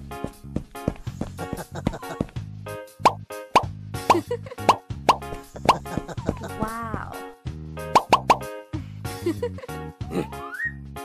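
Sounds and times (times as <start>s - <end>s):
cartoon background music: 0.1s - 11.0s
rising plop: 8.0s - 8.4s.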